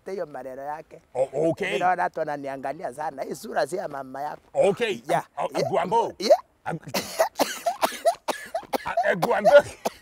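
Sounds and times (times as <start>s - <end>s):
men laughing hard: 6.8s - 10.0s.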